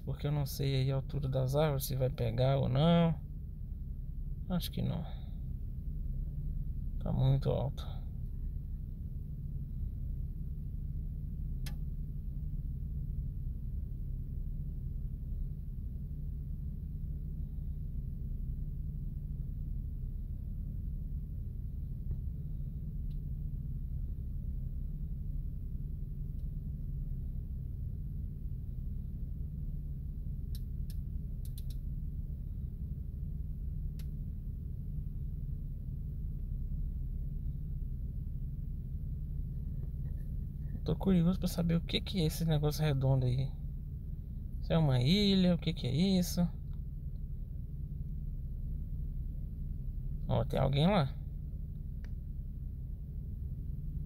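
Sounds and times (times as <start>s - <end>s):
low rumble or hum: 0.0s - 54.0s
faint sharp clicks: 30.5s - 31.9s.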